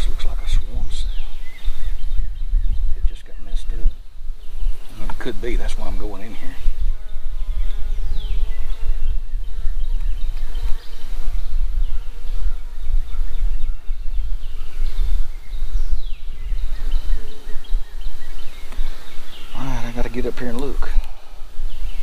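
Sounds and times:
honey bees buzzing: 0:00.0 - 0:22.0.

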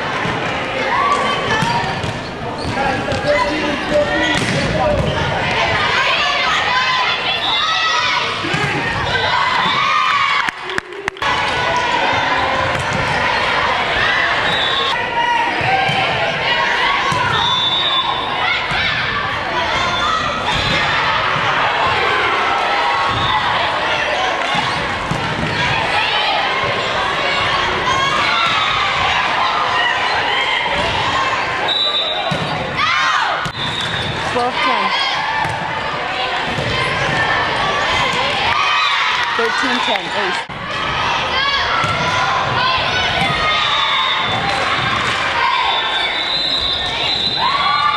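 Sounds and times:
people shouting and cheering: 0:00.0 - 0:47.9
sneakers squeaking on hardwood: 0:01.6 - 0:03.4
volleyball hits: 0:04.2 - 0:05.9, 0:12.4 - 0:13.6, 0:15.5 - 0:17.7, 0:20.2 - 0:22.1, 0:24.2 - 0:26.0, 0:32.0 - 0:35.8, 0:36.4 - 0:41.0, 0:41.6 - 0:45.4
echoing voices: 0:34.1 - 0:46.2.

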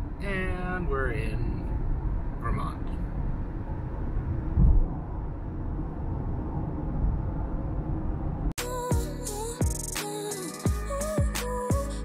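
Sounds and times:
car road noise rumble: 0:01.6 - 0:08.6.

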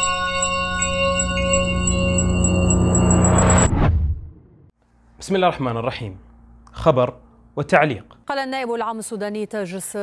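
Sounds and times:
bell-like chimes ringing: 0:00.0 - 0:03.7
low drone: 0:00.1 - 0:04.7.

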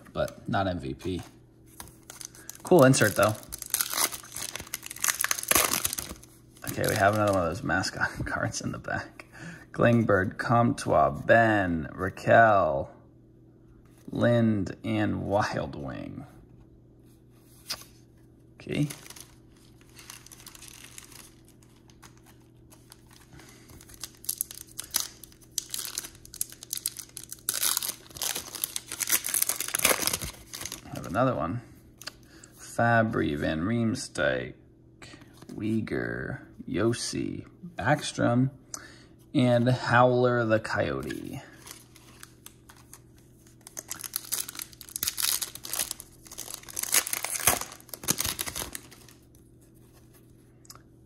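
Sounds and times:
plastic wrapper tearing and crinkling: 0:01.8 - 0:07.6, 0:18.6 - 0:31.1, 0:41.6 - 0:49.4.

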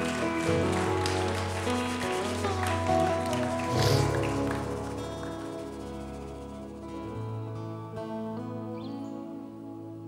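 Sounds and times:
band playing held chords: 0:00.0 - 0:08.8.

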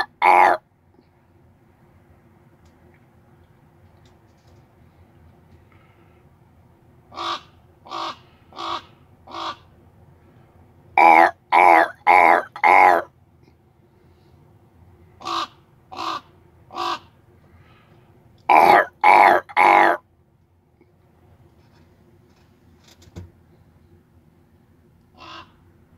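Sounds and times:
person cawing: 0:00.0 - 0:00.6, 0:07.2 - 0:09.6, 0:11.0 - 0:13.1, 0:18.5 - 0:20.0, 0:25.2 - 0:25.5
raven cawing: 0:00.0 - 0:00.6, 0:07.1 - 0:09.7, 0:11.0 - 0:13.1, 0:15.2 - 0:17.8, 0:18.5 - 0:20.0, 0:25.1 - 0:25.6.

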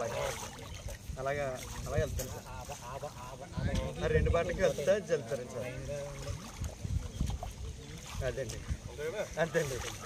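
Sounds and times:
water sloshing: 0:00.0 - 0:10.0.

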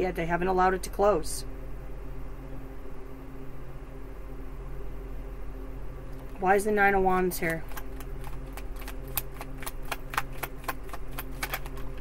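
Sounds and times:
low steady hum: 0:00.0 - 0:12.0
cards being shuffled: 0:07.3 - 0:12.0.

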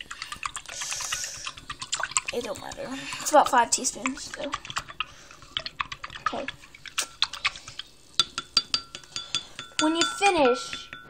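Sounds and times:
pencil tapping against glass: 0:08.2 - 0:11.0.

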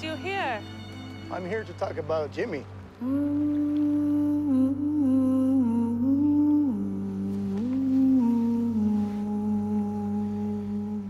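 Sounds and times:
low steady drone: 0:00.0 - 0:11.0
person humming a slow melody: 0:03.0 - 0:11.0.

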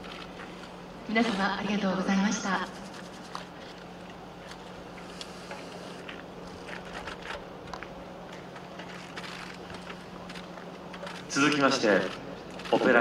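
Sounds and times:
low crowd hum: 0:00.0 - 0:13.0.

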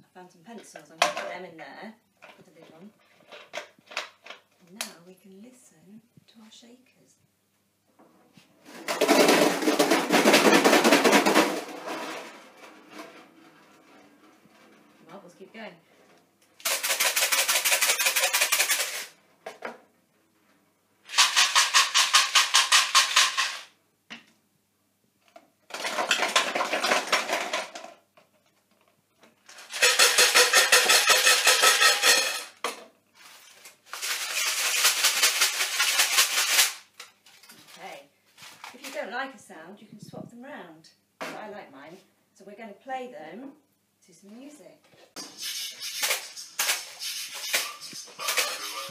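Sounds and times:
shakers rattling: 0:16.6 - 0:19.2, 0:21.1 - 0:23.7, 0:29.5 - 0:32.6, 0:33.2 - 0:36.9, 0:45.2 - 0:48.9.

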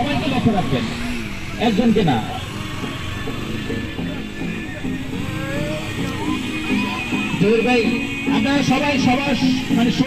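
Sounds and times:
crowd voices: 0:00.0 - 0:10.0
motorcycle engines at low revs: 0:00.0 - 0:10.0
music: 0:00.0 - 0:10.0.

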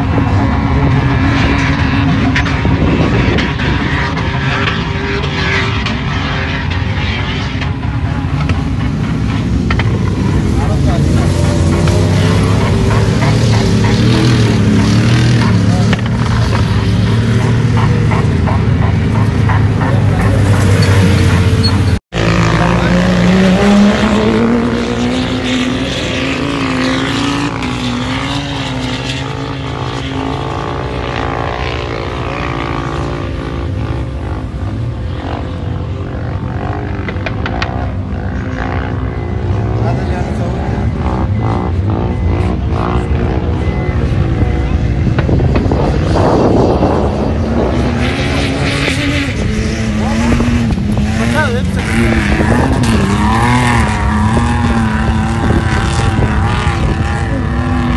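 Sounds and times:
car engines revving: 0:00.0 - 0:57.9
people's voices: 0:07.6 - 0:27.4, 0:36.0 - 0:57.9.

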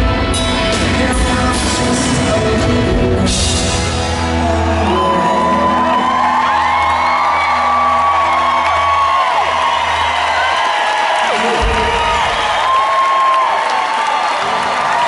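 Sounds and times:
live rock band playing: 0:00.0 - 0:10.6
crowd cheering and whooping: 0:03.8 - 0:15.0.

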